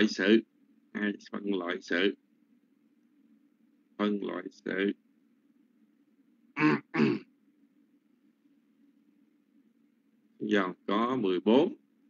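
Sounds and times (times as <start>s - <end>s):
faint low hum: 0.0s - 12.0s
person clearing throat: 6.6s - 7.3s.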